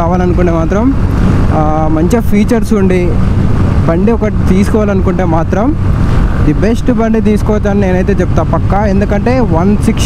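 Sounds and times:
man talking: 0.0 - 5.8, 6.4 - 10.0
motorcycle engine cruising: 0.0 - 10.0
wind on microphone: 0.0 - 10.0.

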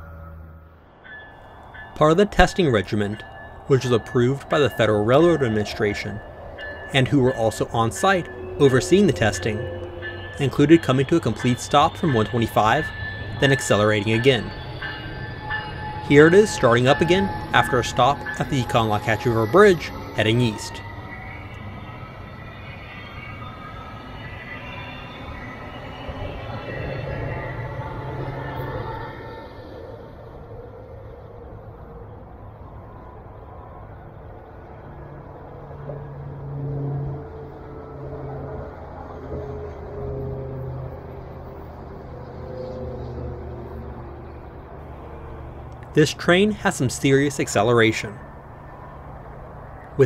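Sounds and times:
faint rising multi-tone whine: 0.0 - 50.0
low locomotive engine hum: 0.0 - 50.0.

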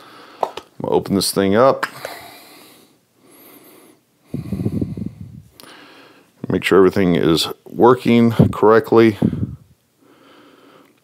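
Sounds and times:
man breathing out: 1.9 - 6.3, 9.2 - 11.0
low nasal sound: 4.3 - 5.8.

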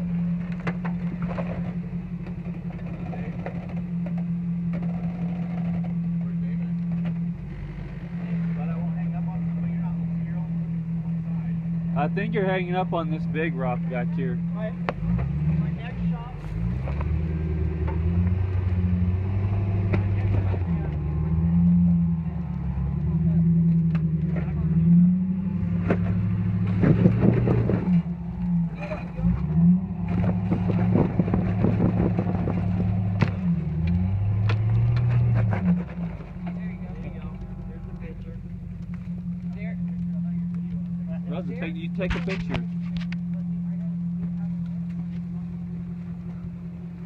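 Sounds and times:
engine revving: 0.0 - 47.0.

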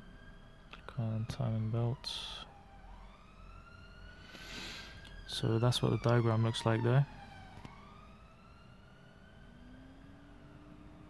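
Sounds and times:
thin whine rising in pitch: 0.0 - 11.0.

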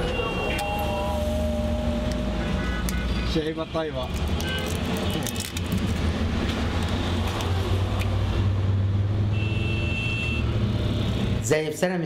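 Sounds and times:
brief high tone: 0.0 - 2.9
car engine and road rumble: 0.0 - 11.5.

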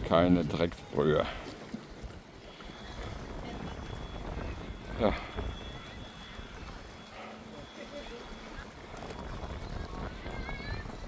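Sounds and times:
small waves lapping on rocks: 0.0 - 11.0
wind rumble on microphone: 0.0 - 11.0.

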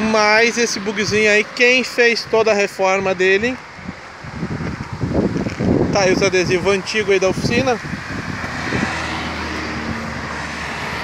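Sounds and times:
motor vehicle running: 0.0 - 11.0.

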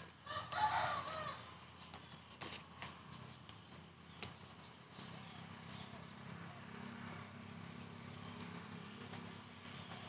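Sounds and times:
rooster crowing: 0.2 - 1.5.

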